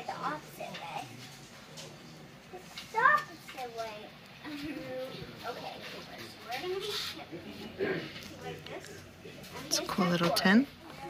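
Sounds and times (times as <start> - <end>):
young child's voice: 2.5 - 5.8.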